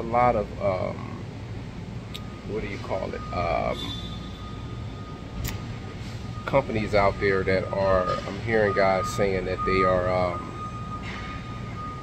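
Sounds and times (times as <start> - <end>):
faint steady tone: 0.0 - 12.0
machinery rumble and hum: 0.0 - 12.0.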